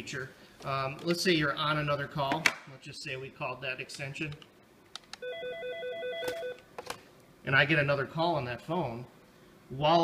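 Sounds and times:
phone ringer warbling trill: 5.2 - 6.6.

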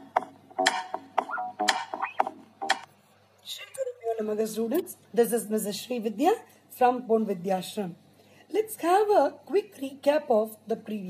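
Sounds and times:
rhythmic tonal clicking: 0.0 - 2.9.

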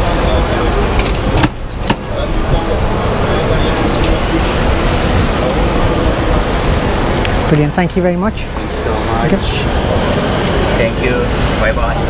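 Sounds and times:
people chattering: 0.0 - 12.0
street rumble: 0.0 - 12.0.

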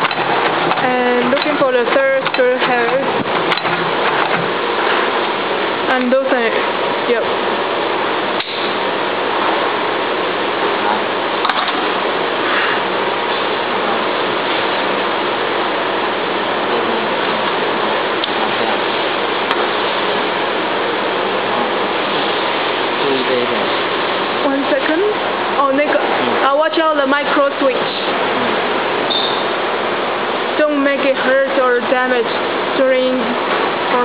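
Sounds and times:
sharp click: 8.4 - 8.7.

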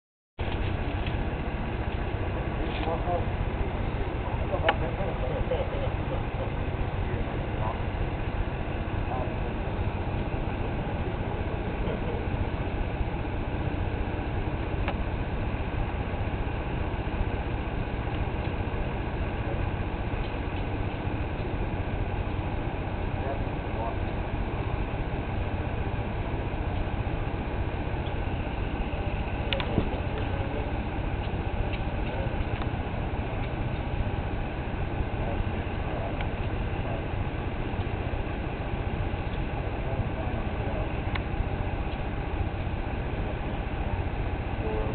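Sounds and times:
steady low rumbling: 0.4 - 44.9.

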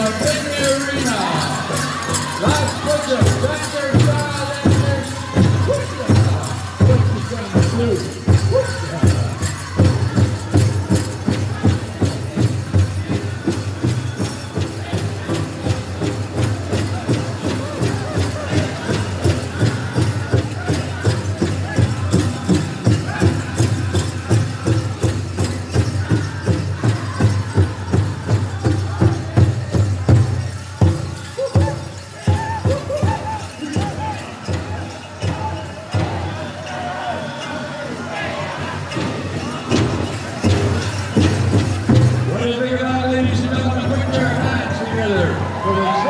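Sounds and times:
group of voices singing: 0.0 - 42.4.

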